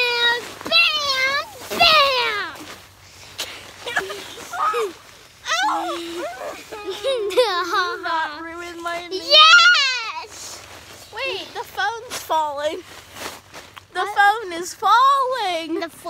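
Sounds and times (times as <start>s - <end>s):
children squealing and shrieking: 3.8s - 7.9s, 9.2s - 10.4s
child long held cry: 5.5s - 7.2s.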